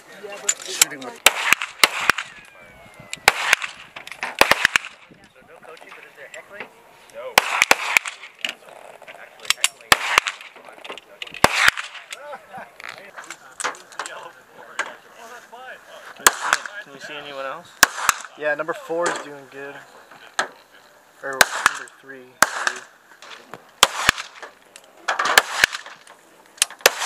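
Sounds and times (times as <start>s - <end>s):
pistol shots: 1.2s - 2.4s, 3.2s - 5.1s, 7.4s - 8.4s, 9.8s - 10.6s, 11.4s - 12.1s, 16.2s - 16.8s, 17.8s - 18.4s, 21.4s - 24.5s, 25.1s - 26.0s, 26.6s - 27.0s.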